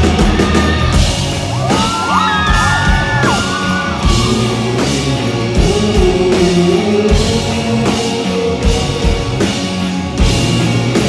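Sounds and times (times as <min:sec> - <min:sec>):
live rock band playing: 0:00.0 - 0:11.0
high yells or whoops: 0:00.4 - 0:04.3.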